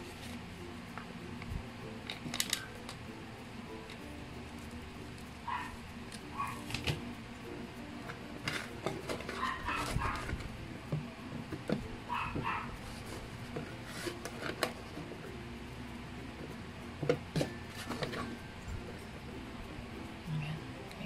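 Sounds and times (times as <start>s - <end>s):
steady low hum: 0.0s - 21.0s
dog yapping: 5.4s - 5.8s, 6.4s - 6.7s, 9.3s - 10.3s, 12.1s - 12.8s.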